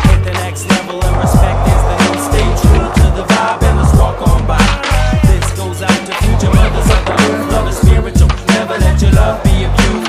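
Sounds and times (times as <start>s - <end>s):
hip hop music: 0.0s - 10.0s
skateboard rolling and clacking: 0.0s - 10.0s.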